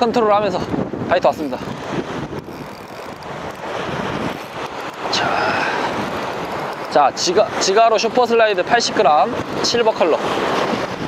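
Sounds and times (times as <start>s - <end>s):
sea waves on rocky shore: 0.0s - 11.0s
wind buffeting microphone: 0.0s - 11.0s.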